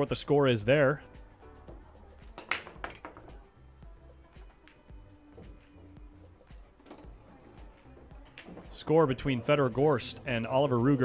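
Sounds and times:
low pool hall background: 0.0s - 11.0s
billiard balls clacking: 1.6s - 3.5s, 4.4s - 9.7s.

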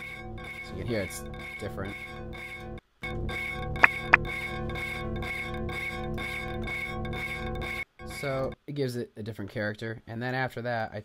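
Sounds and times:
electronic synth drone: 0.0s - 8.6s
pulsing high tone: 0.0s - 8.6s.

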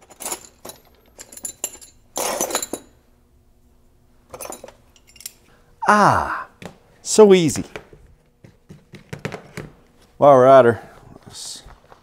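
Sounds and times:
wrenches clinking in metal drawer: 0.0s - 3.0s, 4.3s - 5.4s.

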